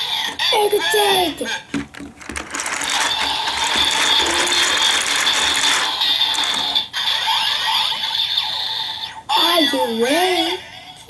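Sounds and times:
toy gears ratcheting: 1.8s - 7.2s
toy electronic sound effects: 3.0s - 8.4s.

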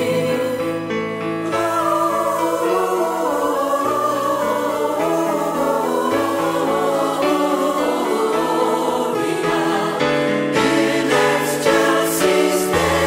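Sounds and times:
choir singing: 0.0s - 13.0s.

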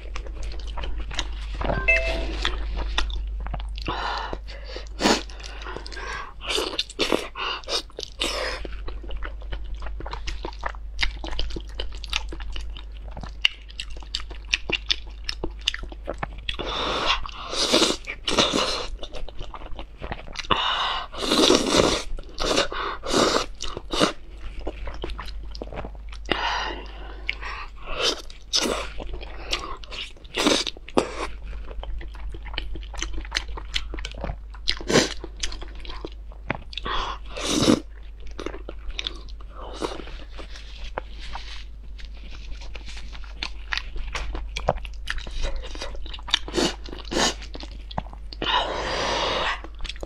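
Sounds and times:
wet chewing: 21.3s - 48.5s.

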